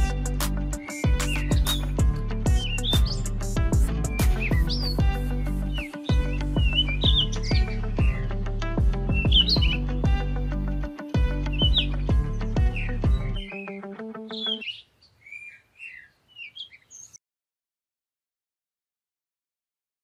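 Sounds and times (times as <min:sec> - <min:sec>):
birds chirping: 0:00.0 - 0:10.6, 0:11.2 - 0:17.2
background music with steady beat: 0:00.0 - 0:14.5.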